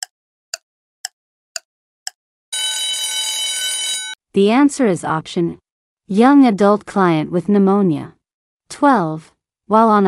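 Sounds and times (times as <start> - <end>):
electronic ringing alarm: 2.5 - 4.2.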